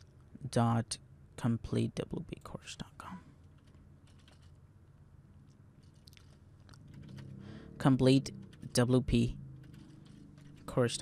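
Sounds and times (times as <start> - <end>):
low steady hum: 0.0 - 11.0
keyboard typing: 3.4 - 4.7, 5.4 - 11.0.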